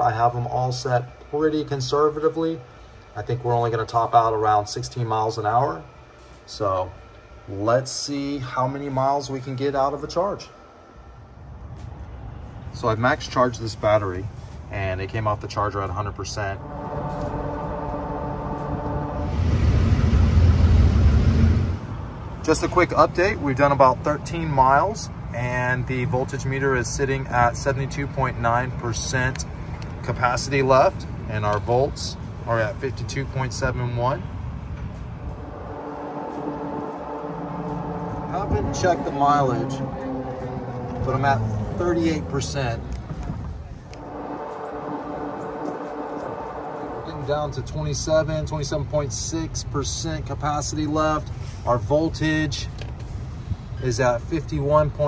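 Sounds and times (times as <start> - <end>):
low rumble with hiss: 0.0 - 55.0
vehicle hum: 2.5 - 55.0
tyre and wind noise: 31.0 - 35.8.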